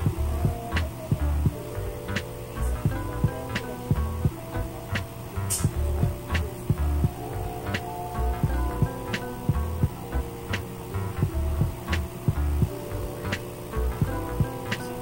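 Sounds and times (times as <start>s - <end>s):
music with heavy bass beat: 0.0s - 15.0s.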